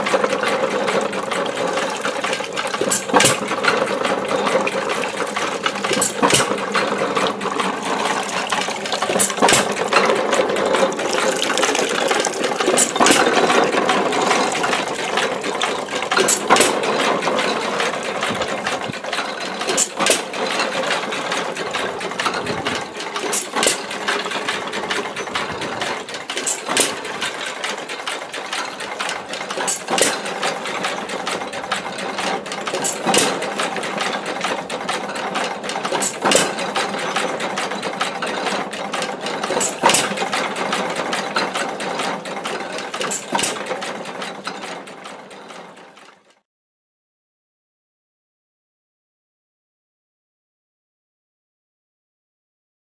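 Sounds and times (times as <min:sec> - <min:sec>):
pumping engine running: 0:00.0 - 0:46.2
gearing clattering: 0:00.1 - 0:45.6
water splashing into metal pail: 0:01.0 - 0:17.5.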